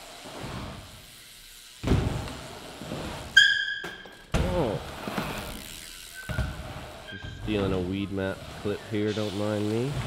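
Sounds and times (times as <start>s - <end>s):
bike tyres impact on ramp: 1.8s - 5.6s, 6.2s - 7.9s
tyre rolling noise: 4.3s - 5.6s.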